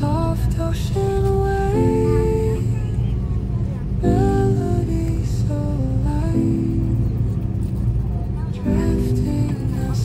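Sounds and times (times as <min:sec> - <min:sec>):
airliner cabin rumble: 0:00.0 - 0:10.0.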